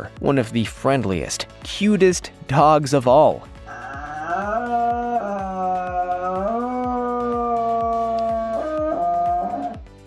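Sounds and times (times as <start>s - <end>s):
dog howling: 3.7s - 9.8s.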